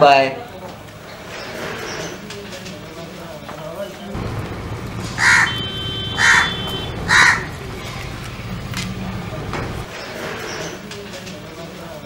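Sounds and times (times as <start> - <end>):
crow cawing: 5.2 - 7.6.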